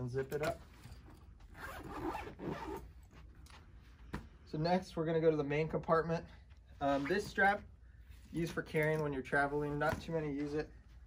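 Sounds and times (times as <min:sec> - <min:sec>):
zipper being pulled shut: 0:01.5 - 0:03.0.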